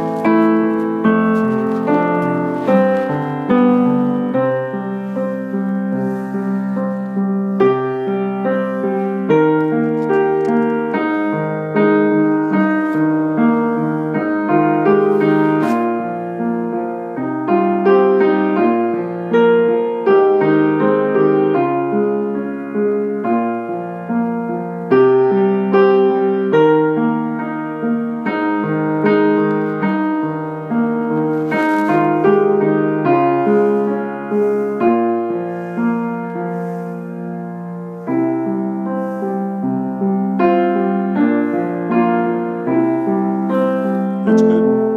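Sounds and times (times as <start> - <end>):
piano chords: 0.0 - 44.9.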